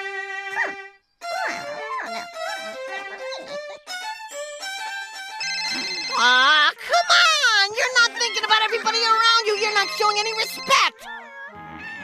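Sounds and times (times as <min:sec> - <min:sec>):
solo violin melody: 0:00.0 - 0:05.7.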